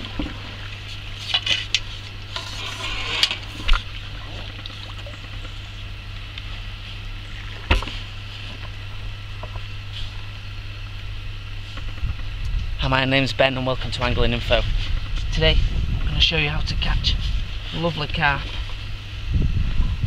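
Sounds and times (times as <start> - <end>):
water splashing: 0.0 - 5.8
steady low hum: 0.0 - 20.0.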